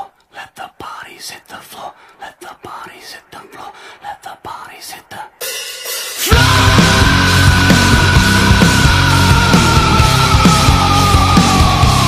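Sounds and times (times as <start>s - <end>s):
person whispering: 0.0s - 5.4s.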